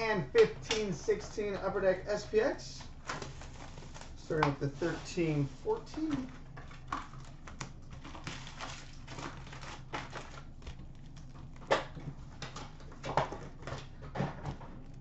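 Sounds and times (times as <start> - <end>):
cardboard box and card packs handled: 2.2 - 11.2.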